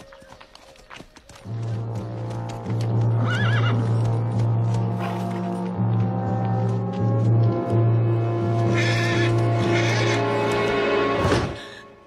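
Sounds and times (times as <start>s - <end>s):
low background music: 1.4s - 12.0s
horse whinnying: 3.2s - 3.8s.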